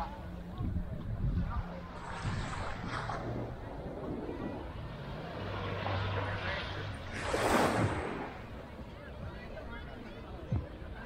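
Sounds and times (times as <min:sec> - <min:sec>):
distant engine drone: 0:00.0 - 0:09.4
wind on microphone: 0:00.0 - 0:09.4
beach ambience: 0:00.0 - 0:11.0.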